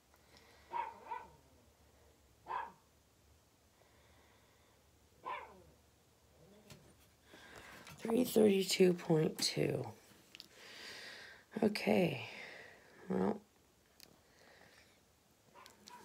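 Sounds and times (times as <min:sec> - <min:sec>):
dog barking faintly: 0:00.7 - 0:01.4, 0:02.5 - 0:02.9, 0:05.2 - 0:05.7, 0:15.5 - 0:16.0.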